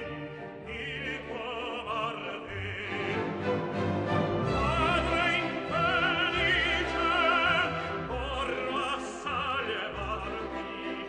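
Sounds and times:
opera singer with vibrato: 0.6s - 3.4s, 4.4s - 11.0s.

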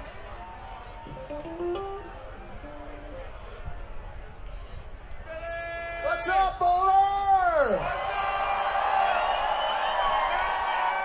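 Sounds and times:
crowd cheering and whooping: 7.8s - 11.0s.

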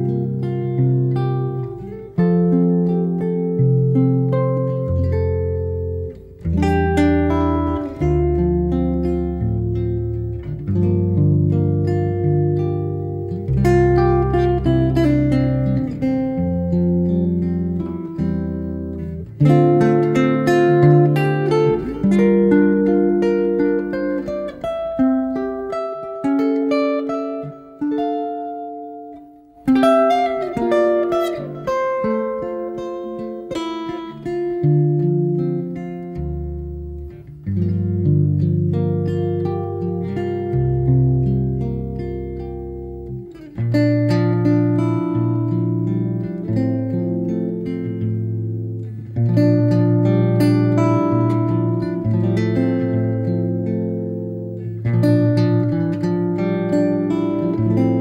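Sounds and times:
plucked string music: 0.0s - 58.0s.

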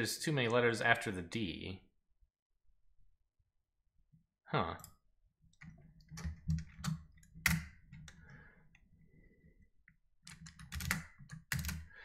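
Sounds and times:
keyboard and mouse clicking: 4.8s - 8.2s, 10.2s - 11.9s.

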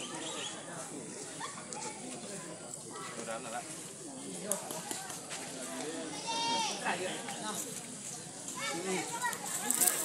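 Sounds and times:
people calling and shouting: 0.0s - 10.0s.

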